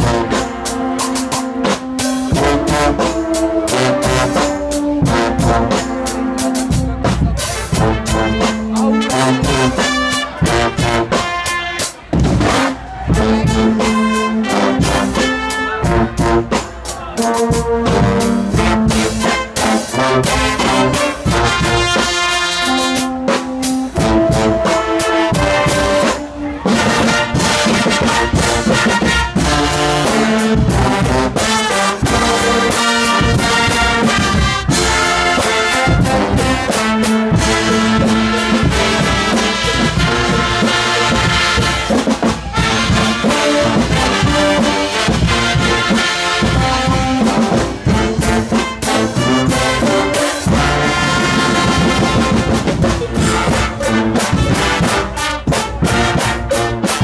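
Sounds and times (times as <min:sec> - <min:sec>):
drum kit with cymbals: 0:00.0 - 0:57.0
trumpets and baritone horns: 0:00.0 - 0:57.0.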